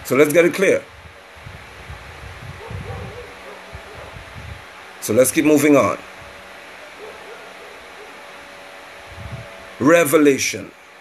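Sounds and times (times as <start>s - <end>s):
low rumbling on microphone: 0.8s - 4.8s, 9.0s - 9.8s.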